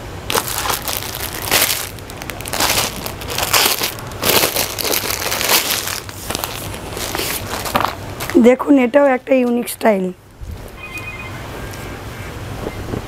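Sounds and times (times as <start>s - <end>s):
plastic packaging crinkling: 0.3s - 8.4s.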